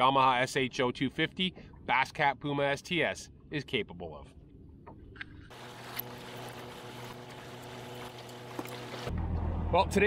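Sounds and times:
wind: 0.0s - 10.0s
boat engine idling hum: 4.4s - 9.7s
water noise: 4.7s - 9.2s.

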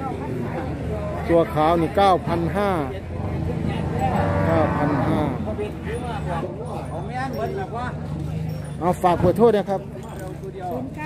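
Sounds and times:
cow mooing: 3.8s - 5.4s.

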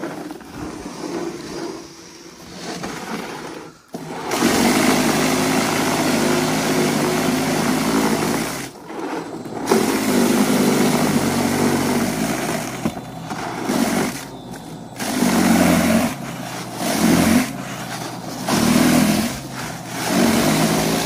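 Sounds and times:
snow being churned and thrown: 0.0s - 21.0s
electric motor running: 3.9s - 21.0s.

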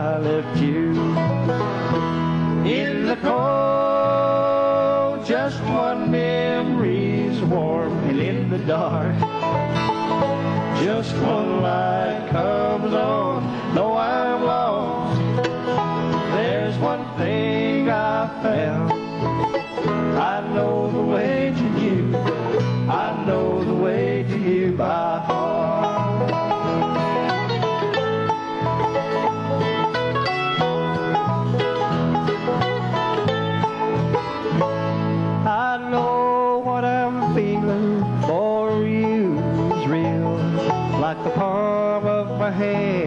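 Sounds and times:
bluegrass band playing: 0.0s - 43.0s.

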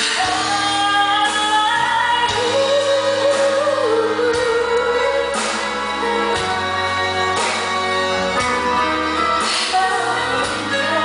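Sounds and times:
woman singing a pop ballad: 0.0s - 6.6s, 9.3s - 11.0s
band accompaniment: 0.0s - 11.0s.

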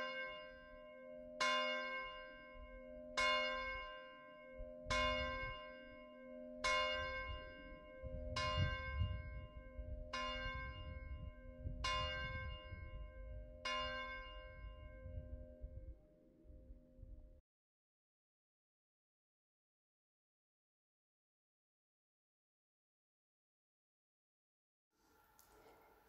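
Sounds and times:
low rumble: 8.0s - 17.4s.

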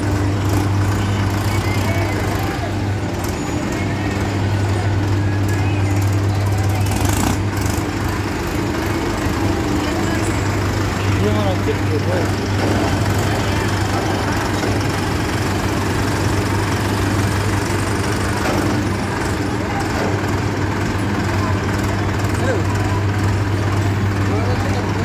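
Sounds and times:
tractor engine idling: 0.0s - 25.0s.

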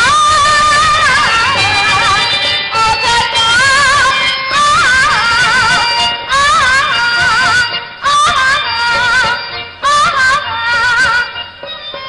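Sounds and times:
instrumental accompaniment: 0.0s - 12.0s
woman singing ornamented verse: 0.0s - 12.0s.

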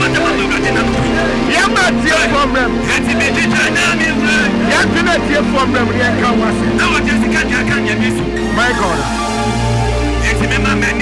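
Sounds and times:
man speaking into a microphone: 0.0s - 9.1s, 10.2s - 11.0s
live worship music: 0.0s - 11.0s.

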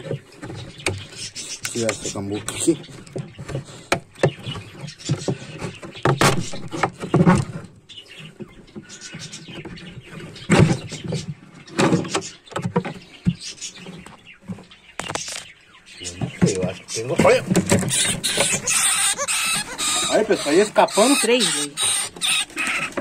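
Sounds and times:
wooden knocks and scrapes: 0.0s - 15.5s, 16.1s - 20.5s
loud wooden bangs: 5.7s - 7.7s, 16.2s - 20.5s.

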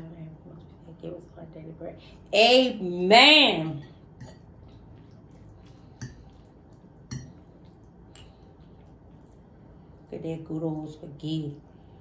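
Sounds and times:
spaghetti squishing: 4.3s - 12.0s.

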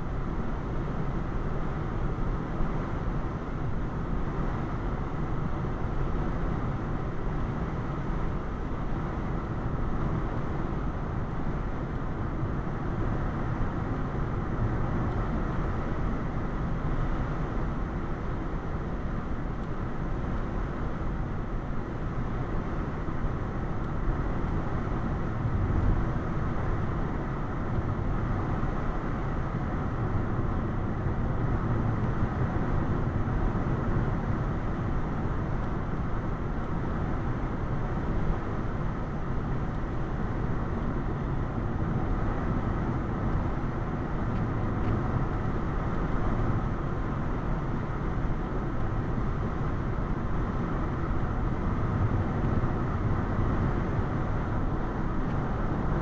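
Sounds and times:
car road and engine noise: 0.0s - 56.0s.

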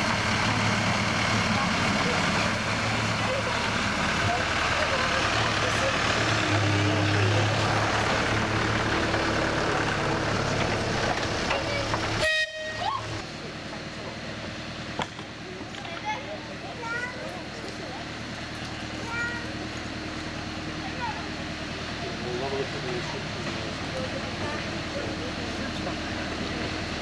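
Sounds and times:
short horn toot: 12.2s - 13.0s.

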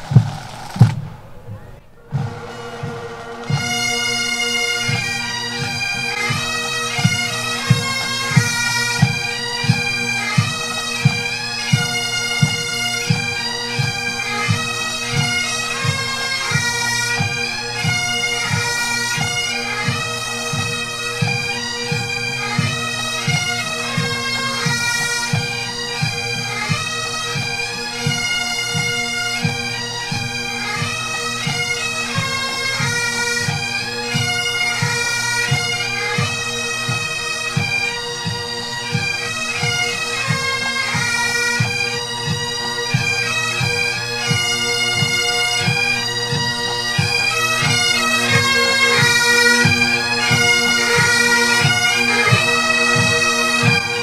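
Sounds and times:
bagpipes playing a march: 0.0s - 54.0s
pipe band drums: 0.0s - 54.0s.

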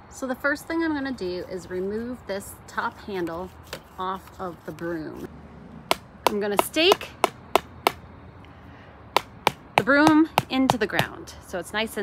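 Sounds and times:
rubber mallet knocking broom handle: 5.9s - 8.0s, 9.2s - 11.2s.

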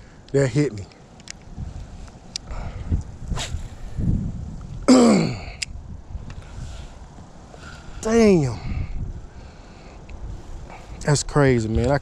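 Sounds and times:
wind rumble on microphone: 1.4s - 12.0s.

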